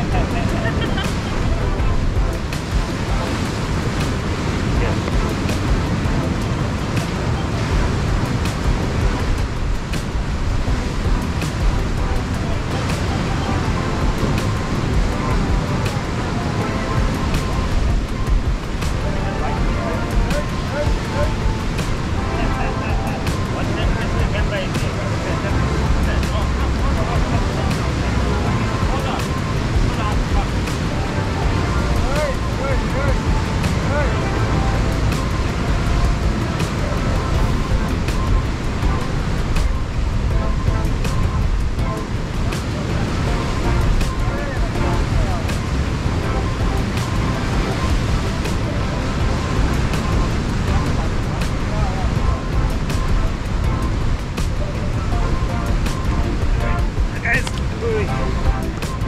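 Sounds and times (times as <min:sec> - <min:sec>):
faint voices: 0:00.0 - 0:10.1, 0:10.8 - 0:41.2
waves breaking on rocks: 0:00.0 - 0:34.1
wind buffeting microphone: 0:00.0 - 0:59.0.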